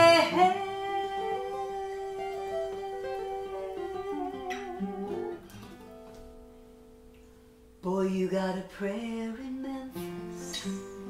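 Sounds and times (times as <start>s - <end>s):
acoustic guitar strumming a chord: 0.0s - 7.4s.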